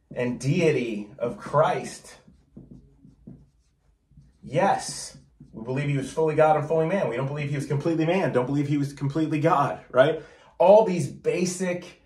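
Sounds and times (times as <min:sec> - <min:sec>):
marker writing on whiteboard: 0:00.0 - 0:08.4.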